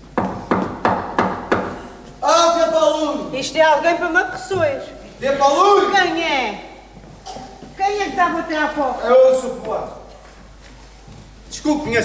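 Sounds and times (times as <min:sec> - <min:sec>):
knocking on a door: 0:00.2 - 0:01.8.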